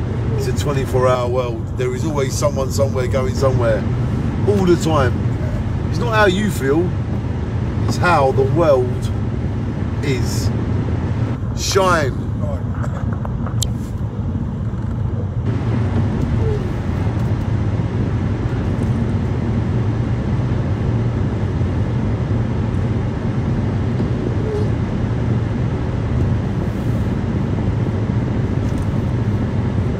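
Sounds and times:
car interior road rumble: 0.0s - 29.9s.

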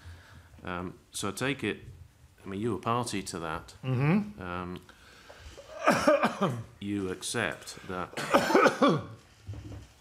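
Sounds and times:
person coughing: 5.7s - 6.7s, 8.1s - 9.2s.

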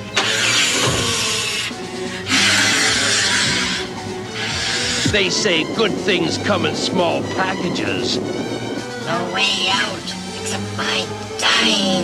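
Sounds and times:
background music: 0.0s - 12.0s
harsh hissing noise bursts: 0.2s - 5.2s.

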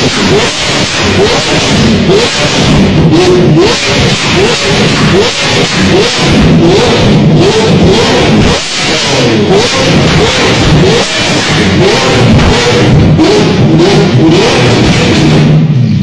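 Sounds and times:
car engine revving: 0.0s - 16.0s
loud music: 0.0s - 16.0s.

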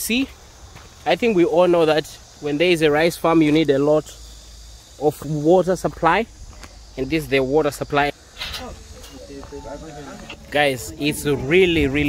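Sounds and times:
faint chatter of people: 8.4s - 12.0s.

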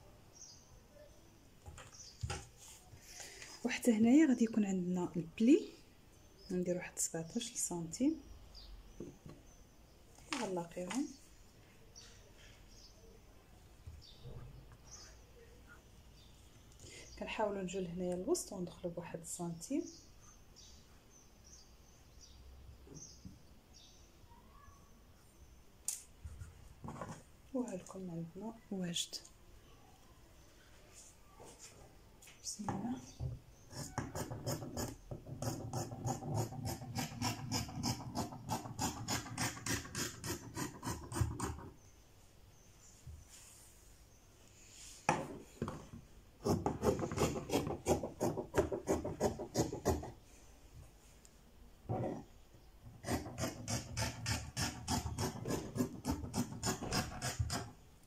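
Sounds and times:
faint high-pitched chirps: 24.2s - 25.4s.

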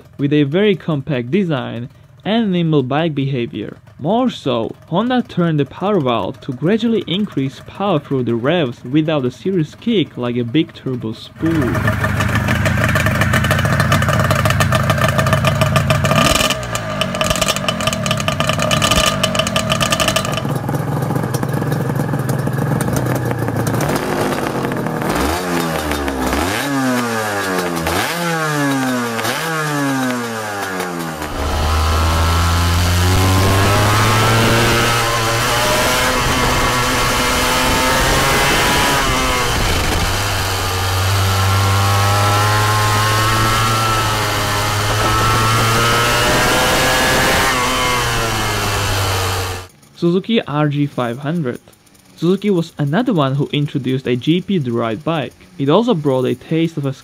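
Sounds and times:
engine throttle blips: 3.2s - 49.9s
motorcycle engine running: 3.7s - 8.5s, 11.4s - 49.9s.

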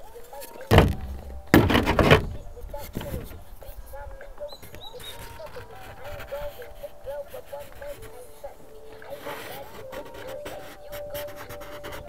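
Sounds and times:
wooden board scraping plastic sheet: 0.7s - 3.6s, 9.0s - 12.0s.

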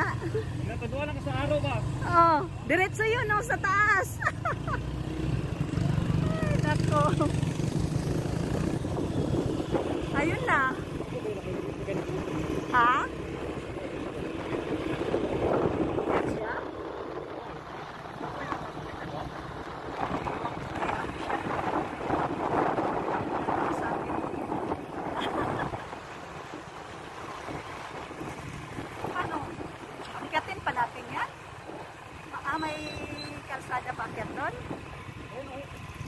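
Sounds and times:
voices: 0.0s - 7.5s, 10.0s - 26.2s, 29.0s - 35.8s
motorcycle engine running: 0.0s - 36.0s
person laughing: 4.1s - 4.9s, 25.1s - 25.9s
tyre and wind noise: 6.5s - 11.2s, 14.0s - 26.7s.

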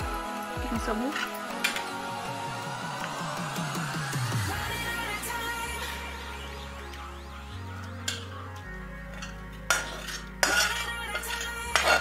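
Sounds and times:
steel spatula scraping iron pan: 9.1s - 12.0s.

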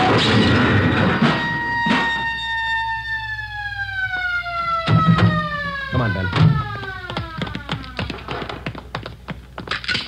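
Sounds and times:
police siren winding down: 0.0s - 8.3s
rapid taps and clicks: 7.0s - 10.0s.

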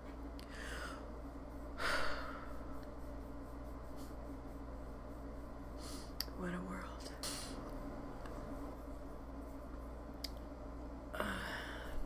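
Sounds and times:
low steady hum: 0.0s - 12.0s
woman breathing: 0.4s - 2.9s, 5.8s - 6.2s, 11.1s - 12.0s.

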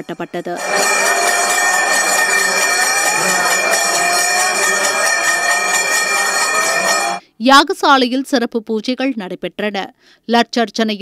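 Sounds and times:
low drone: 0.0s - 7.2s
temple bells ringing: 0.0s - 7.2s.

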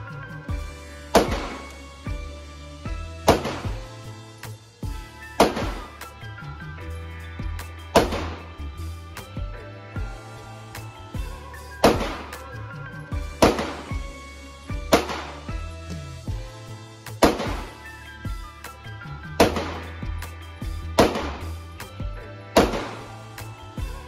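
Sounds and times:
background music with deep bass: 0.0s - 24.0s
handgun shots with echo: 1.1s - 1.6s, 3.3s - 3.8s, 5.4s - 5.9s, 8.0s - 8.4s, 13.4s - 13.9s, 14.9s - 15.4s, 17.2s - 17.8s, 19.4s - 19.9s, 21.0s - 21.5s, 22.6s - 23.0s.

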